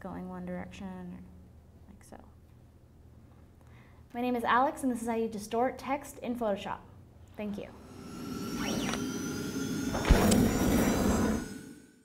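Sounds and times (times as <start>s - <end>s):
sharp hit: 7.7s - 12.0s
whoosh: 7.7s - 12.0s.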